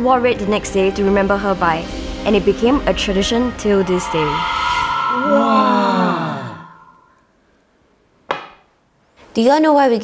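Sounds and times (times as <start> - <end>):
group of voices saying wow: 3.7 - 7.2.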